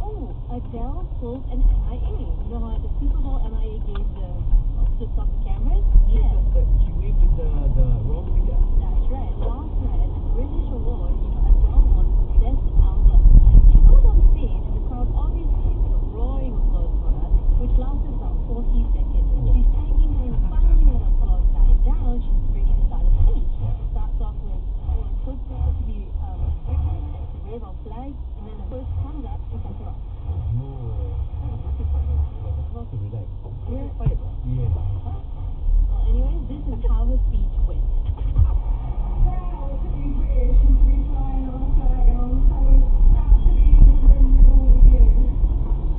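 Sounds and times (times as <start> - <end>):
car road and engine rumble: 0.0 - 45.9
muffled talk: 0.0 - 45.9.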